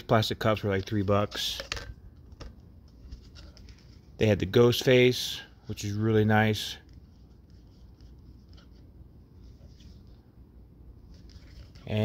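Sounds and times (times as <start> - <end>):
plastic cup handling: 0.4 - 4.1.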